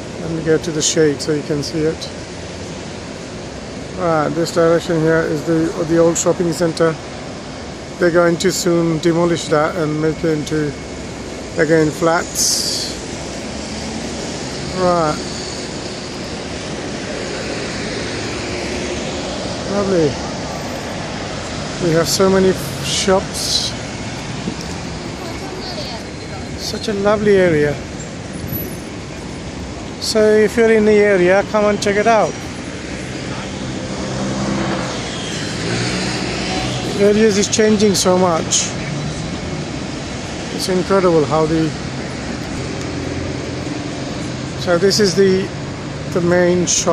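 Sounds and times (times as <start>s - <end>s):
bus passing alongside: 0.0s - 46.9s
busy city road traffic: 0.0s - 46.9s.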